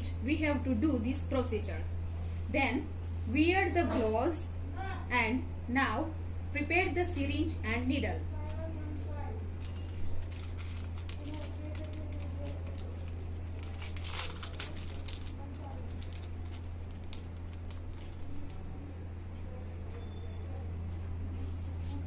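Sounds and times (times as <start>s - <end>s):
steady low hum: 0.0s - 22.0s
syringe wrapper crinkling: 9.6s - 18.8s.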